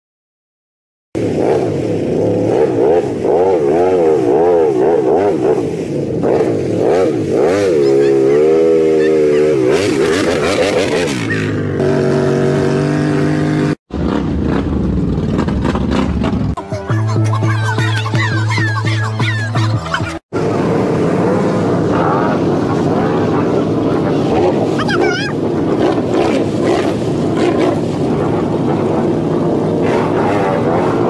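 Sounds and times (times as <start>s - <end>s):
atv engine revving: 1.2s - 16.6s, 18.9s - 31.0s.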